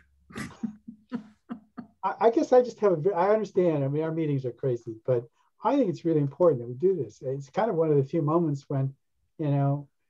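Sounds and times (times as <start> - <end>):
person laughing: 0.4 - 1.9.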